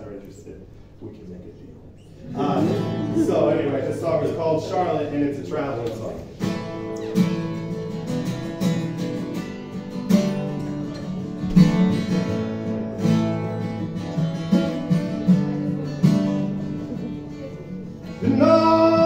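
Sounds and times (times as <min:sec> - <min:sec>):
acoustic guitar strumming chords: 0:02.3 - 0:03.4, 0:06.2 - 0:19.0.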